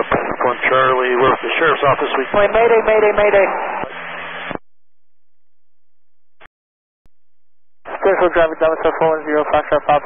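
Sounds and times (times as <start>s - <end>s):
radio voice: 0.0s - 3.9s, 7.9s - 10.0s
radio squelch burst: 0.0s - 4.6s, 7.9s - 10.0s
radio static hiss: 0.0s - 4.6s, 7.9s - 10.0s.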